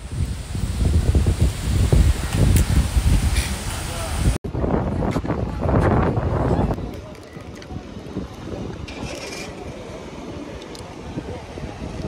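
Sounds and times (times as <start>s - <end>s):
outdoor ambience: 0.0s - 12.0s
wind buffeting microphone: 0.0s - 12.0s.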